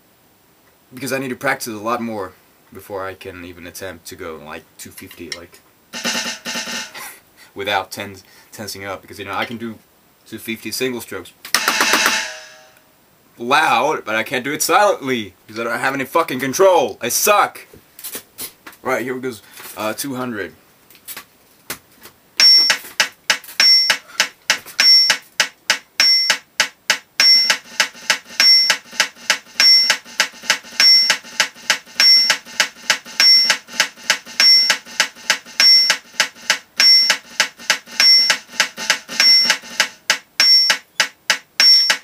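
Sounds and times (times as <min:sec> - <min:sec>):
drumsticks on electronic snare pad: 0:06.0 - 0:07.1, 0:11.5 - 0:12.8, 0:22.4 - 0:42.0
metronome beeps: 0:22.4 - 0:22.8, 0:23.6 - 0:24.1, 0:24.8 - 0:25.3, 0:26.0 - 0:26.5, 0:27.2 - 0:42.0.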